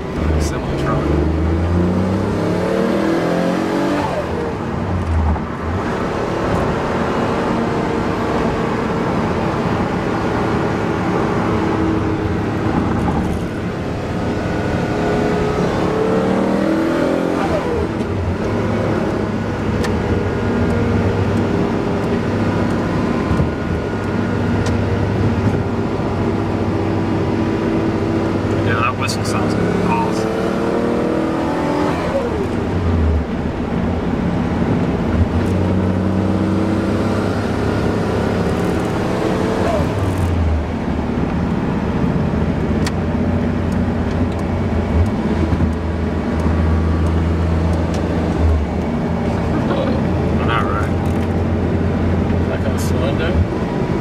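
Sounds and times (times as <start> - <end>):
car engine revving and shifting: 0.0 - 54.0.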